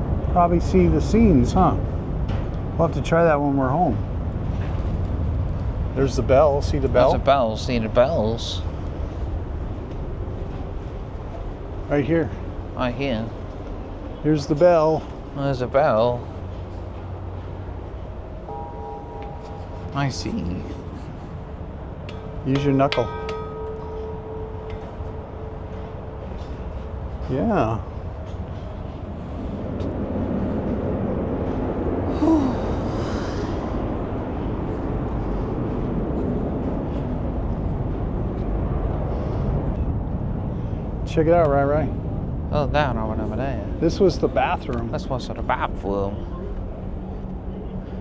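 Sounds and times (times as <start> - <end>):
low background rumble: 0.0 - 48.0
wind buffeting microphone: 0.0 - 48.0
ship's bell ringing: 6.2 - 29.3.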